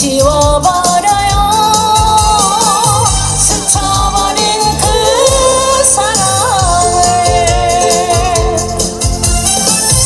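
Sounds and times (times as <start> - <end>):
woman singing into microphone: 0.0 - 9.0
backing music with bass beat: 0.0 - 10.0.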